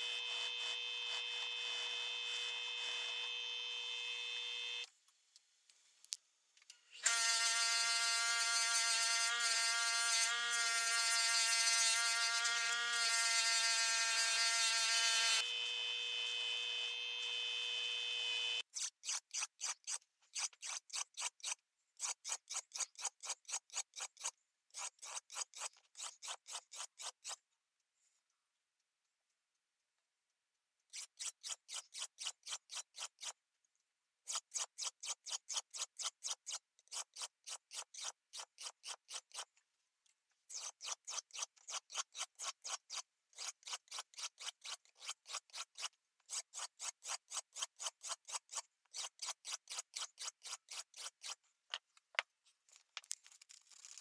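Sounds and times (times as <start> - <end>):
sandpaper scraping steel blade: 18.6 - 27.4, 30.9 - 33.4, 34.2 - 39.6, 40.5 - 51.4, 53.2 - 54.0.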